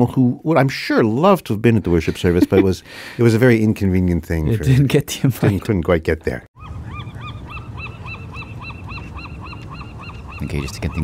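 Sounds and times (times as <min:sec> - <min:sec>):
bird calling rapidly: 0:06.6 - 0:11.0.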